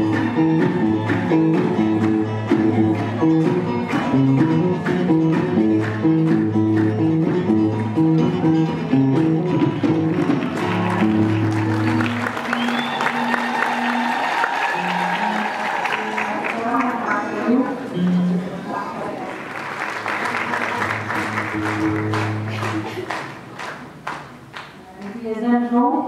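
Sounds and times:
group hand-clapping: 0.0 - 8.2, 9.1 - 17.4, 19.2 - 25.2
live band music: 0.0 - 14.2, 14.8 - 19.1, 20.2 - 24.0
applause: 10.0 - 17.4, 19.2 - 24.8.

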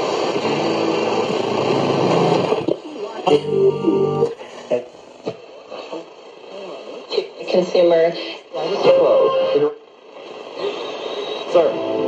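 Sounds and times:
faint garbled radio stations: 0.0 - 12.0
radio static: 10.6 - 12.0.

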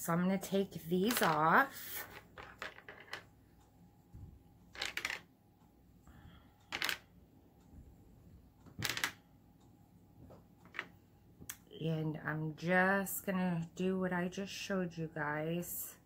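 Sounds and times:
plastic gems clicking on tabletop: 1.0 - 1.4, 2.0 - 3.3, 4.7 - 5.3, 6.7 - 7.0, 8.7 - 9.2.

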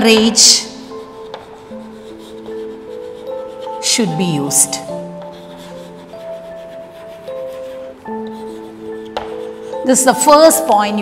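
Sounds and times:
chalk scratching on chalkboard: 0.0 - 10.7
soft background music: 0.0 - 11.0.

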